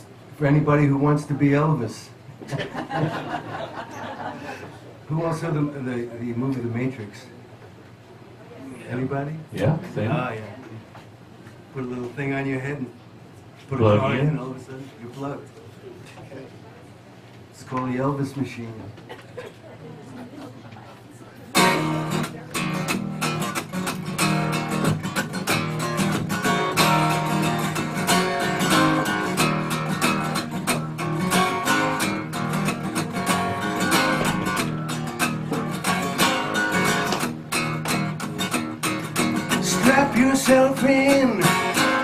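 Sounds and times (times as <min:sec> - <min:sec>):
acoustic guitar strumming: 0:21.5 - 0:42.0.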